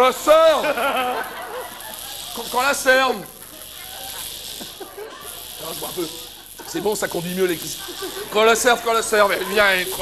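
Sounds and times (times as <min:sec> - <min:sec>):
faint voices: 0:00.0 - 0:10.0
steady high hiss: 0:00.0 - 0:10.0.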